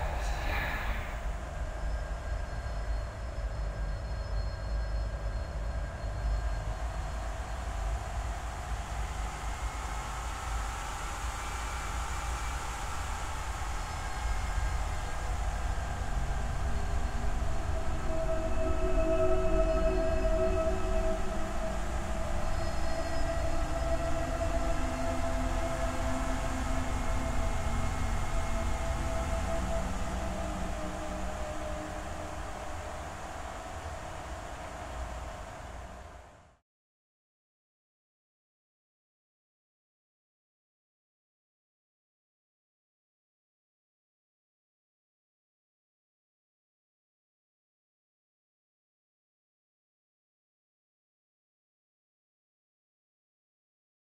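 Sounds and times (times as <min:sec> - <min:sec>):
low continuous rumble: 0:00.0 - 0:36.6.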